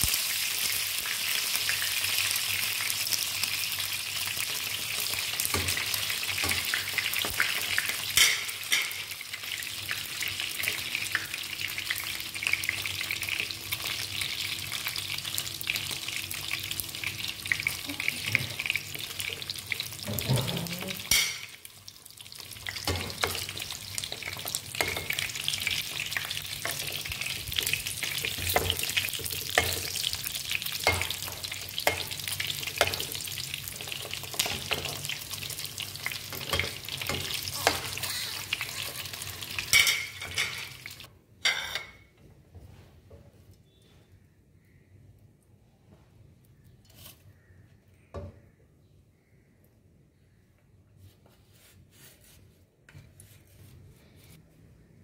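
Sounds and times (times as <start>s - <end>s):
sausages sizzling in a frying pan: 0.0s - 41.1s.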